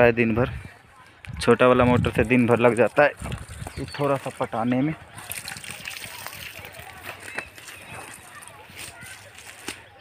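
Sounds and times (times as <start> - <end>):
water pouring from a pipe: 2.1 - 8.9
water splashing: 2.3 - 9.4.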